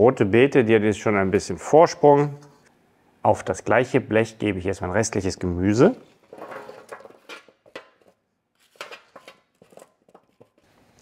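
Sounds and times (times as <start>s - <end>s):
spoon scraping metal bowl: 6.3s - 10.7s.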